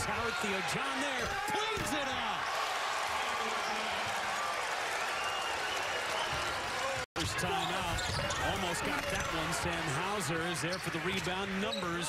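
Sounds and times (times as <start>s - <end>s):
arena crowd noise: 0.0s - 12.0s
shoes squeaking on court: 7.2s - 9.2s
commentator speaking: 7.2s - 12.0s.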